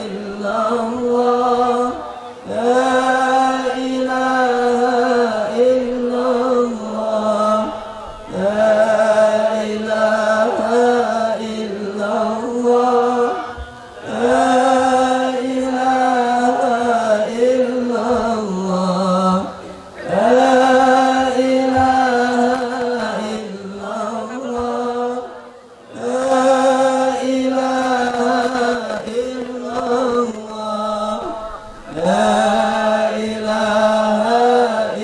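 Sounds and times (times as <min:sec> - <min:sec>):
devotional chanting: 0:00.0 - 0:35.0.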